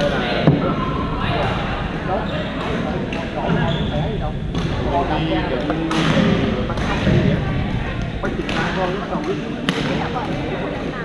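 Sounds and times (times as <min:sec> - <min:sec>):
echoing voices: 0:00.0 - 0:11.0
racket hitting shuttlecock: 0:09.2 - 0:10.4.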